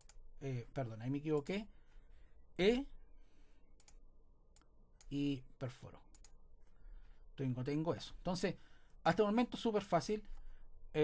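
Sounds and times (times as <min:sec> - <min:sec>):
computer mouse clicks: 0:00.0 - 0:00.2, 0:03.8 - 0:05.2, 0:06.1 - 0:06.4.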